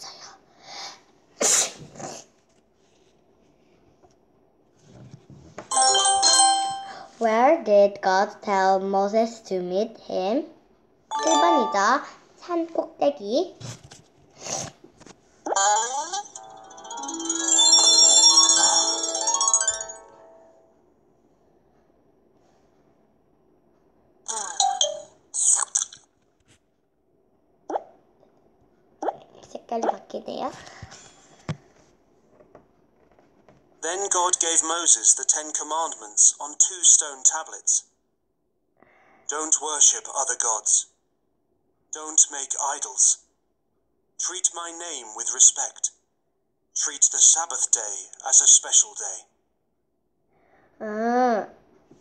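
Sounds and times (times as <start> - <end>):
girl sneezing: 1.4 - 2.2.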